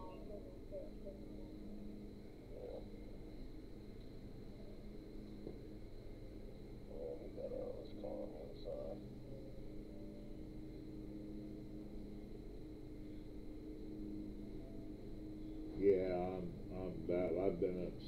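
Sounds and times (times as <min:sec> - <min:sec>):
faint high whine: 0:00.0 - 0:18.0
low steady hum: 0:00.0 - 0:18.0.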